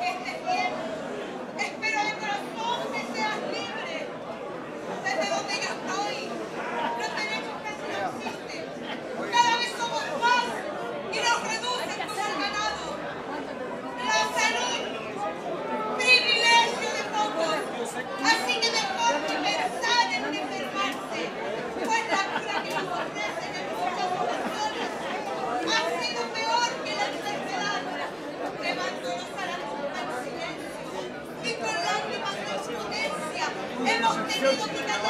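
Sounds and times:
overlapping chatter in a hall: 0.0 - 35.0.

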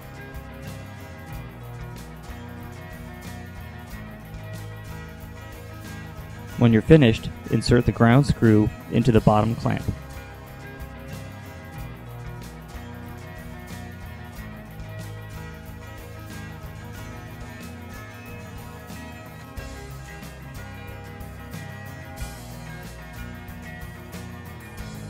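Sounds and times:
background music: 0.0 - 25.0.

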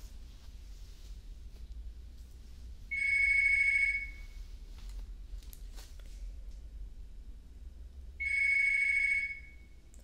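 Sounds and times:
steady low hum: 0.0 - 10.0
high-pitched electronic ring: 2.9 - 4.4, 8.2 - 9.8.

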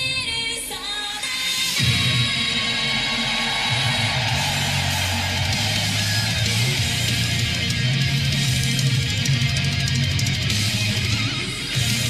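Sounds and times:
heavy metal band playing live: 1.7 - 12.0.

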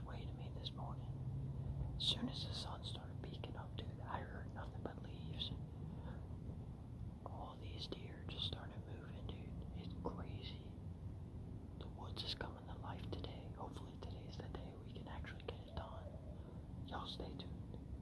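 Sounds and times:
man whispering: 0.0 - 1.2, 2.0 - 6.2, 7.2 - 10.8, 11.8 - 18.0.

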